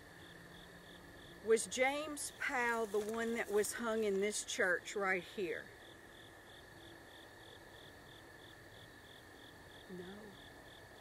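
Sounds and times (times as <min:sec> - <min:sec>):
cricket-like chirping: 0:00.0 - 0:11.0
insect high trill: 0:00.0 - 0:11.0.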